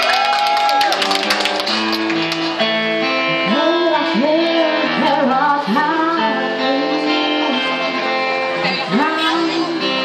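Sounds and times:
acoustic guitar strumming: 0:01.1 - 0:10.0
woman singing: 0:03.4 - 0:08.0, 0:08.6 - 0:10.0.

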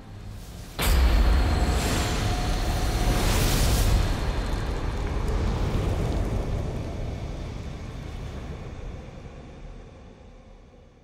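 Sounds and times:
deep rumbling noise: 0:00.1 - 0:10.8.

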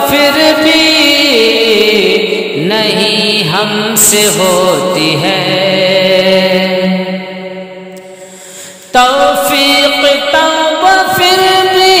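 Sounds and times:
man singing long note: 0:00.0 - 0:12.0.

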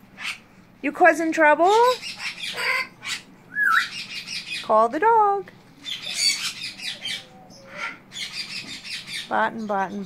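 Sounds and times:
parrot squawking: 0:00.0 - 0:00.5, 0:01.6 - 0:04.9, 0:05.8 - 0:09.8
parrot wavering whistle: 0:02.4 - 0:04.4.

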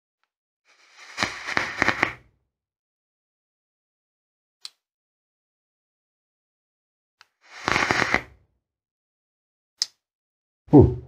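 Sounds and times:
crackling vape puff: 0:00.7 - 0:02.2, 0:07.5 - 0:08.4.

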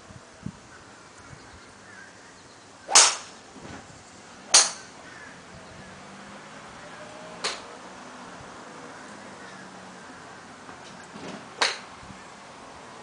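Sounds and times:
golf clubs striking balls: 0:02.9 - 0:03.5, 0:04.4 - 0:05.1, 0:07.4 - 0:07.8, 0:10.6 - 0:12.0.

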